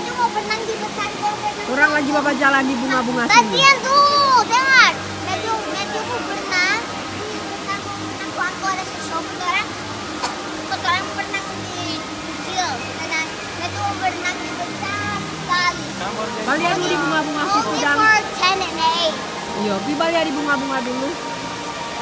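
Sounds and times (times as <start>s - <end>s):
chatter of many voices: 0.0s - 22.0s
faint background music: 0.0s - 22.0s
running water: 0.0s - 22.0s.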